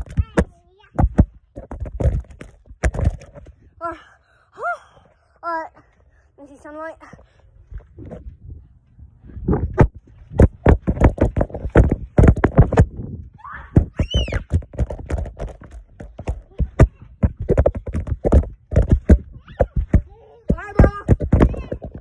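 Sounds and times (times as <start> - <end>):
trampoline thumps and rattles: 0.0 - 3.9, 6.4 - 22.0
child squealing: 13.4 - 14.5.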